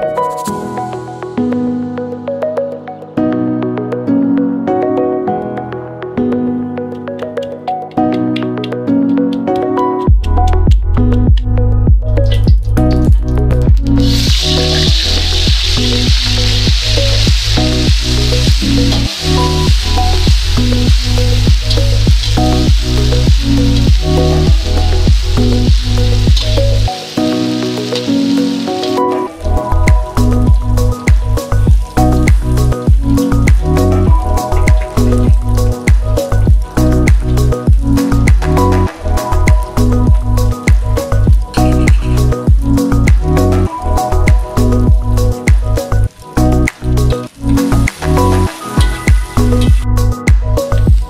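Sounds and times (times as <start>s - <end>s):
background music with steady beat: 0.0s - 51.0s
oil sizzling in a wok: 12.3s - 51.0s.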